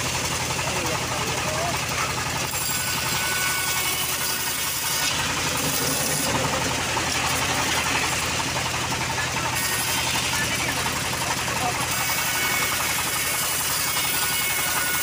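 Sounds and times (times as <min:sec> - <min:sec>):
bandsaw motor hum: 0:00.0 - 0:15.0
saw blade cutting wood: 0:00.0 - 0:15.0.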